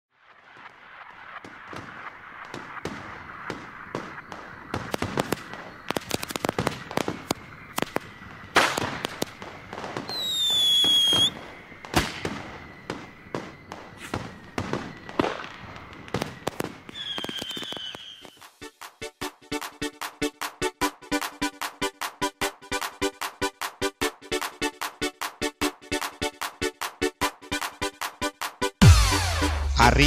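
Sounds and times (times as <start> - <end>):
whistling firework: 0.1 - 18.7
firecrackers banging: 0.2 - 18.5.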